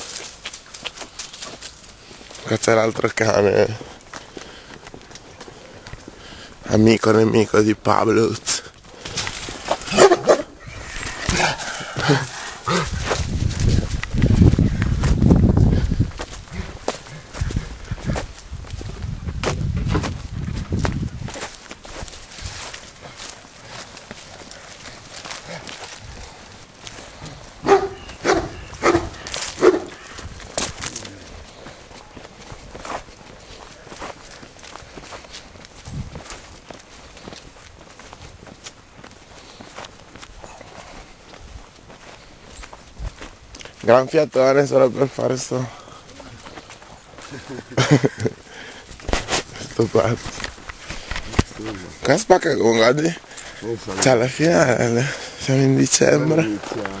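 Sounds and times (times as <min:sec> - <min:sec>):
footsteps on grass: 0:00.0 - 0:57.0
dog barking: 0:09.9 - 0:10.5, 0:27.6 - 0:30.0.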